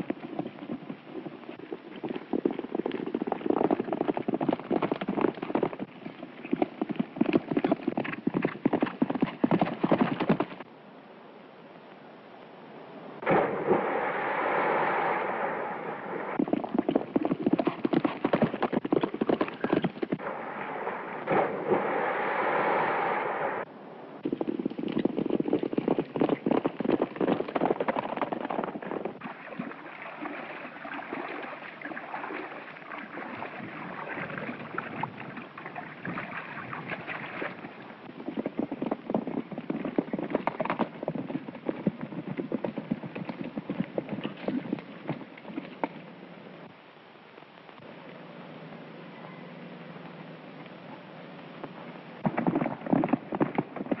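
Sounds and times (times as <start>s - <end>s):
horses galloping on hard ground: 0.0s - 10.7s, 16.4s - 20.2s, 24.2s - 46.6s, 51.6s - 54.0s
rushing noise: 13.2s - 16.5s, 20.2s - 24.3s.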